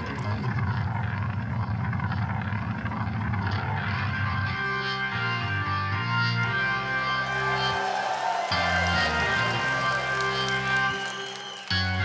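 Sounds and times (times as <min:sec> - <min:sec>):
organ playing: 0:04.3 - 0:12.0.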